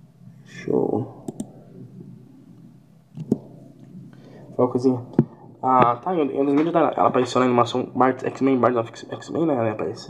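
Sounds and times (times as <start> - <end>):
sharp clicks: 1.2 - 1.6.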